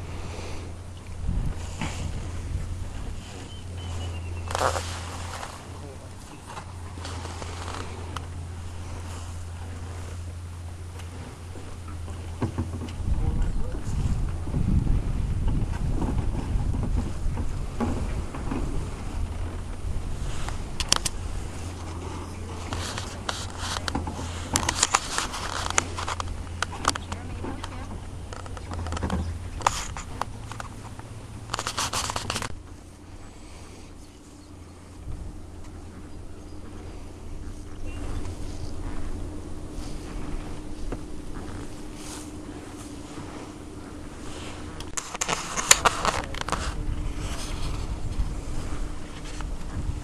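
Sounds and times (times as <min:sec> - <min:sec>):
low water rumble: 0:00.0 - 0:50.0
sharp clicks and scrapes: 0:03.2 - 0:05.6, 0:20.4 - 0:32.6, 0:44.3 - 0:49.8.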